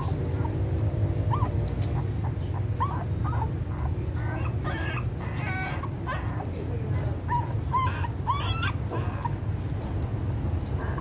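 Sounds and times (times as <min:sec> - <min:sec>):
puppies squeaking and whimpering: 0:00.0 - 0:09.8, 0:10.5 - 0:11.0.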